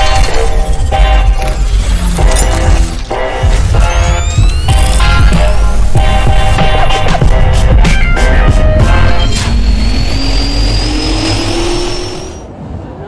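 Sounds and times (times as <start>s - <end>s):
intro music with heavy bass: 0.0s - 12.4s
rising engine-like whine: 0.3s - 12.6s.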